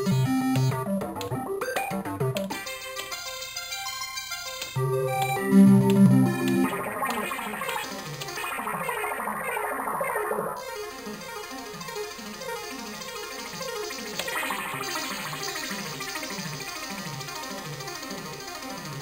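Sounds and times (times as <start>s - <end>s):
synth arpeggio loops: 0.0s - 2.6s, 4.8s - 19.0s.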